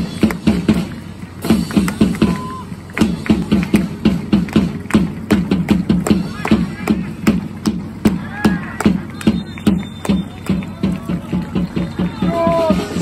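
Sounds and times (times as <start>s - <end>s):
drums beating rhythm: 0.0s - 13.0s
hand clapping: 0.1s - 0.8s, 1.4s - 12.8s.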